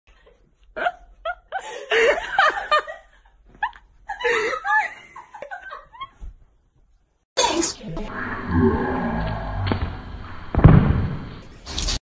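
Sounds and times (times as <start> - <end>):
woman laughing: 0.2 - 6.2.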